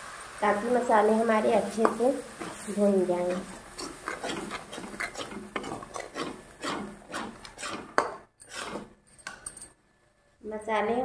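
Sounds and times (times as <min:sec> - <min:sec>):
metal spatula scraping pan: 0:01.8 - 0:09.4.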